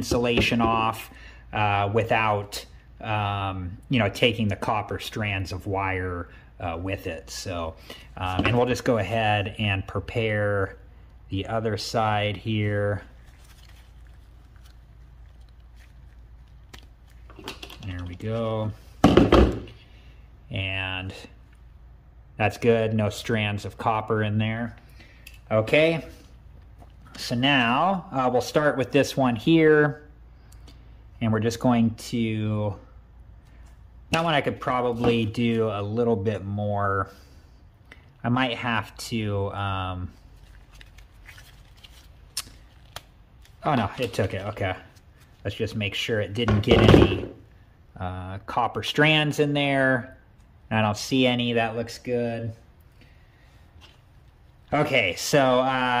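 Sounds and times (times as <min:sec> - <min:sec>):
gloved hands handling: 0:13.0 - 0:19.8, 0:40.2 - 0:45.5.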